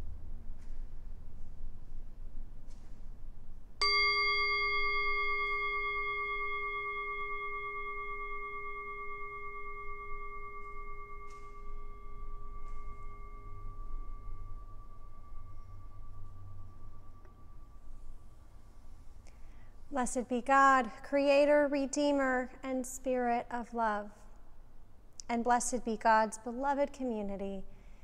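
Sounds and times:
singing bowl ringing: 3.8 - 19.1.

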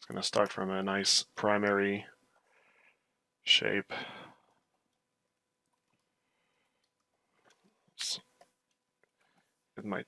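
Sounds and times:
spoken word: 8.0 - 8.2.

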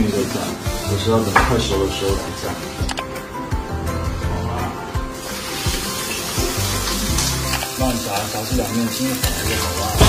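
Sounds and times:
background music: 0.0 - 10.0
chicken sizzling in oil: 5.1 - 10.0.

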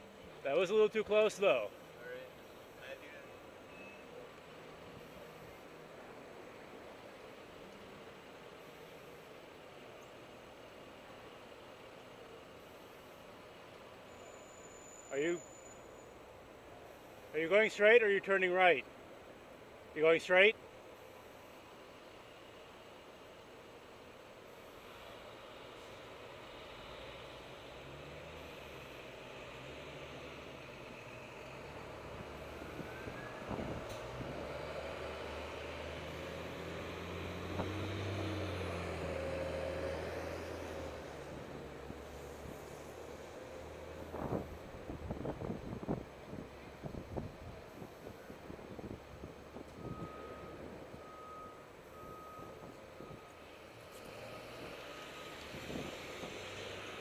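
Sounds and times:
traffic engine hum: 0.0 - 57.0
short electronic beeps: 3.7 - 4.2.

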